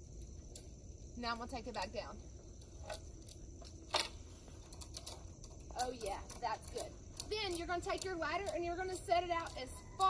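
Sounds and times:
steel chain clicking: 1.6 - 10.0.

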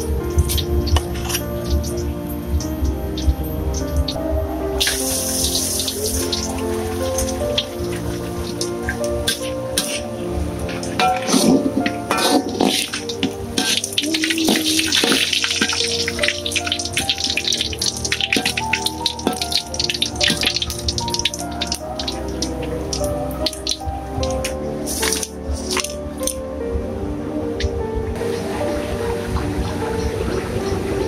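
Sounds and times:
background music with held notes: 0.0 - 31.0
fish frying in sizzling oil: 0.4 - 26.1.

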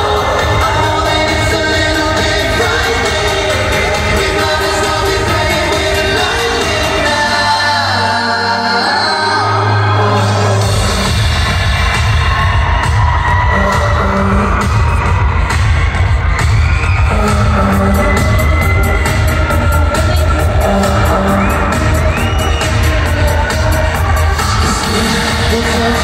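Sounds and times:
crowd whooping: 0.0 - 26.0
live pop music over sound system: 0.0 - 26.0.

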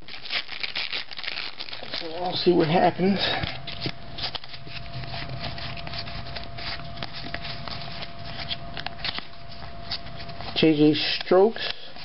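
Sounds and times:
trading cards rustling and clicking: 0.0 - 12.0.

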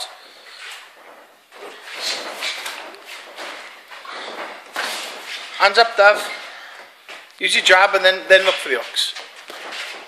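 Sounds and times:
feet scuffing on ring canvas: 8.3 - 10.0.

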